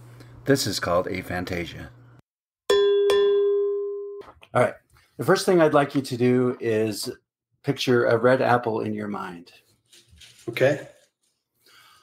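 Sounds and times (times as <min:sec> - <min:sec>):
bell-like chime ringing: 0:02.7 - 0:04.2.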